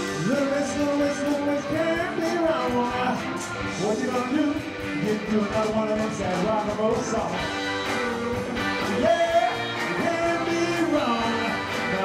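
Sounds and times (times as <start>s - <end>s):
bending lead guitar melody: 0.0s - 12.0s
live rock band playing: 0.0s - 12.0s.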